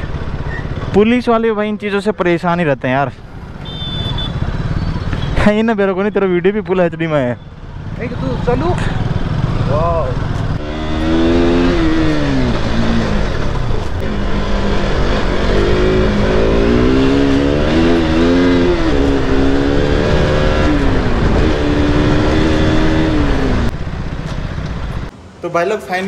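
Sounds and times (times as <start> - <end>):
road and wind rumble: 0.0 - 26.0
motorcycle engine revving: 3.4 - 25.1.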